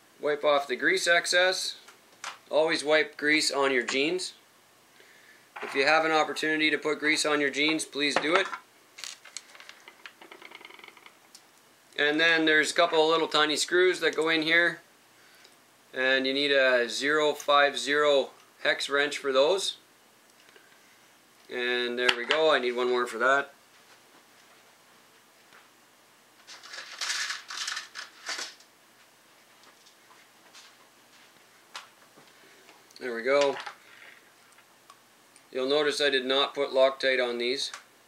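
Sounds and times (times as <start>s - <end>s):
small parts rattling: 8.3s - 11.2s, 26.5s - 28.6s.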